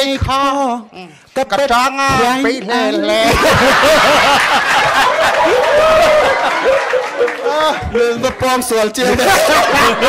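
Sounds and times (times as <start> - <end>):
audience laughing: 3.1 - 7.8, 9.0 - 10.0.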